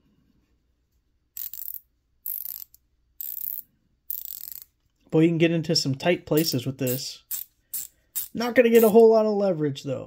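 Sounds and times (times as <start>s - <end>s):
ratchet clicking: 1.4s - 4.7s, 6.4s - 8.9s.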